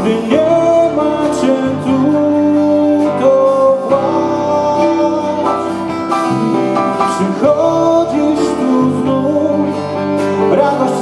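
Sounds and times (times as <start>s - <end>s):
acoustic guitar: 0.0s - 11.0s
drum kit: 0.0s - 11.0s
electric bass guitar: 0.0s - 11.0s
keyboard: 0.0s - 11.0s.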